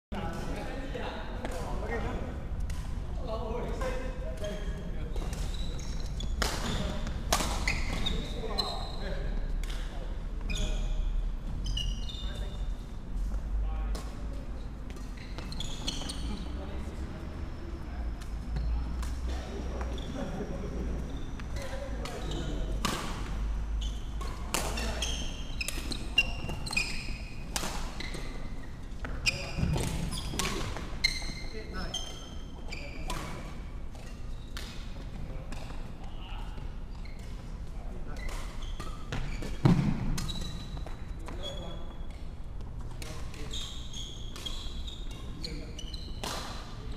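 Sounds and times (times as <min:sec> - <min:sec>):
shoes squeaking on wooden floor: 0:04.4 - 0:09.1, 0:14.6 - 0:16.6, 0:23.6 - 0:27.4, 0:38.5 - 0:42.0, 0:42.8 - 0:46.2.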